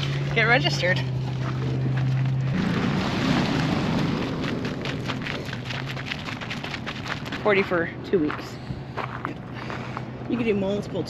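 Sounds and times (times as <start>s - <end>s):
footsteps crunching on gravel: 0.2s - 10.4s.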